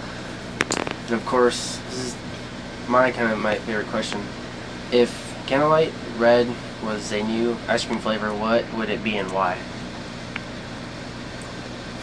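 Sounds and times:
ventilation hum and hiss: 0.0 - 12.0.

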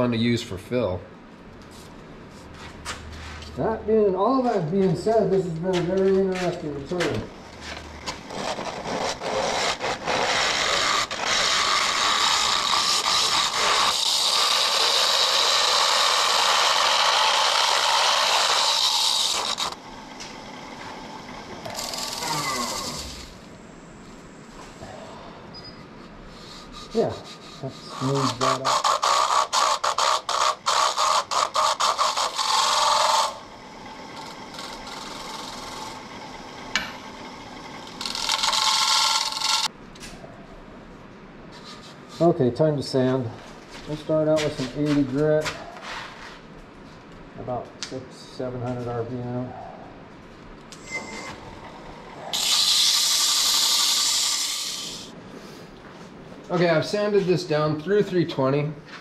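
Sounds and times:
lathe tool scraping wood: 6.9 - 23.4, 26.7 - 39.7, 51.1 - 55.2.

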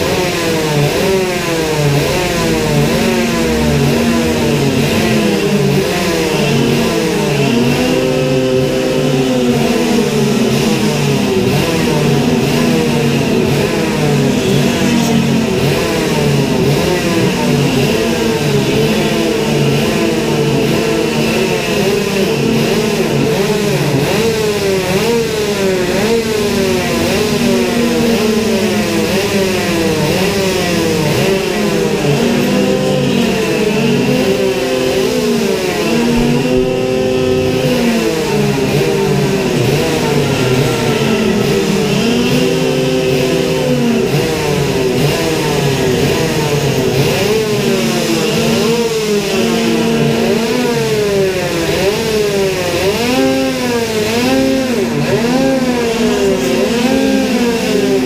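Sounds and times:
engine revs: 0.0 - 58.0
go-kart engines idling: 0.0 - 58.0.

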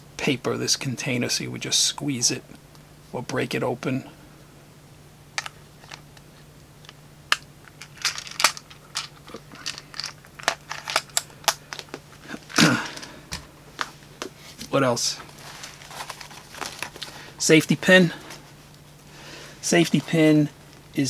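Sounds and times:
faint steady hum: 0.0 - 21.0
plastic rustle: 14.5 - 17.2.

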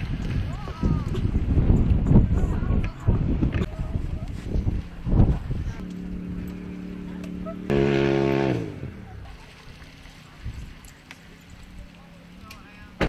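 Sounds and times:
watercraft engine humming: 0.0 - 13.0.

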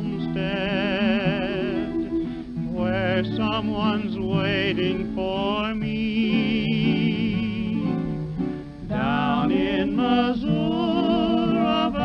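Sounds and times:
guitar accompaniment: 0.0 - 12.0
man singing with vibrato: 0.0 - 12.0.

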